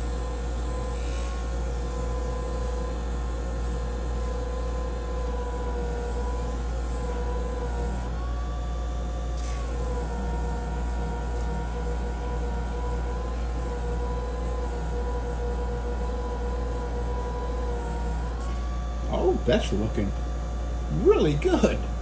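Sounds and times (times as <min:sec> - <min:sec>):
electric burnisher whining: 0:00.0 - 0:22.0.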